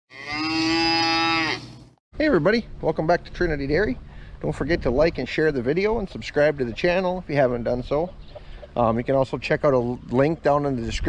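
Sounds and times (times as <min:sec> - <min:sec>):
cow mooing: 0:00.1 - 0:01.7.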